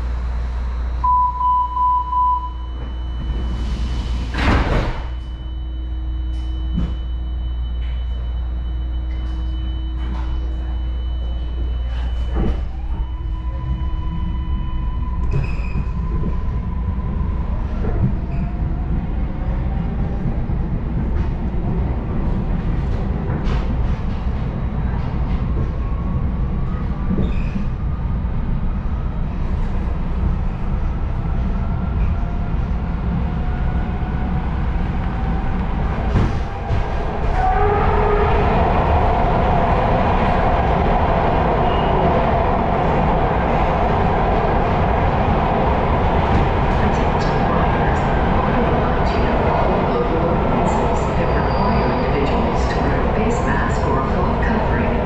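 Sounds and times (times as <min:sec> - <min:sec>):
train wheels rumbling on rail: 0:11.8 - 0:55.0.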